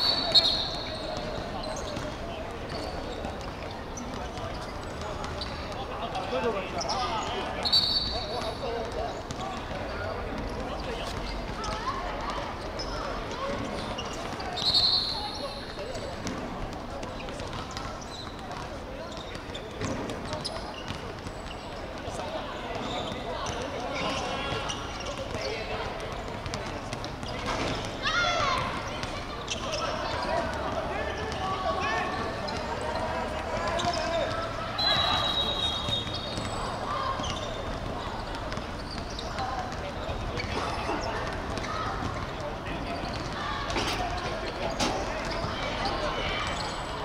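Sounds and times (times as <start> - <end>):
players shouting: 27.8 - 47.0.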